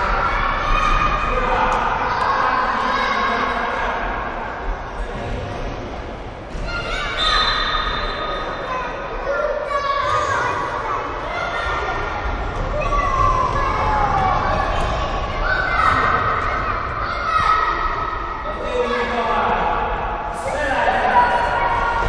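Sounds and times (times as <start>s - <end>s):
children shouting in echoing hall: 0.0s - 4.5s, 6.5s - 22.0s.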